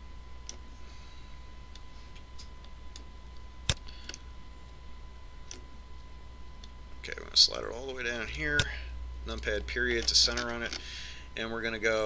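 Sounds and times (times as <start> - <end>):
faint electrical hum: 0.0 - 12.0
thin high whine: 0.0 - 12.0.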